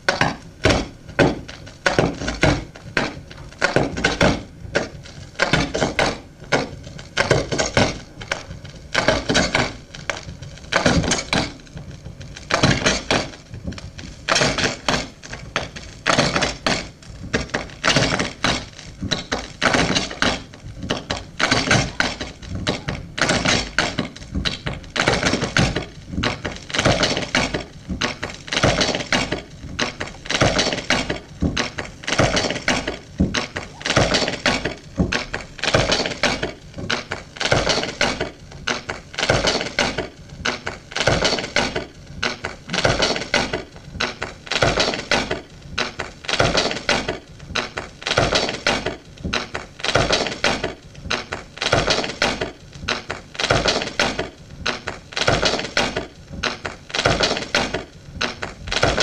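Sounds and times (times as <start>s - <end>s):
turntable knocks crackles and scrapes: 0.0s - 59.0s.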